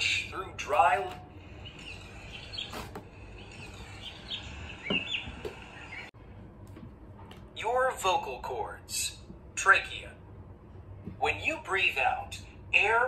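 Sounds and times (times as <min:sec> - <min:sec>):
bird chirps: 0:01.6 - 0:06.1.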